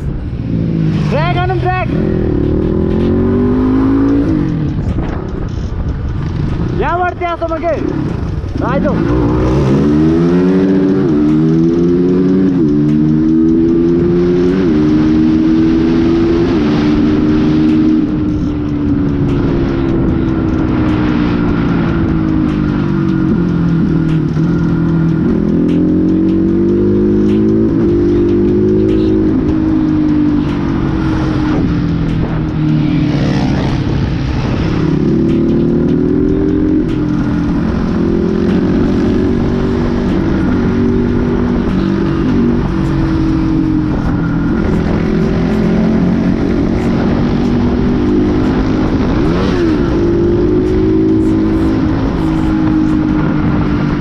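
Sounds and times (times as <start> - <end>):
motorcycle engine shifting gears: 0.0 - 54.0.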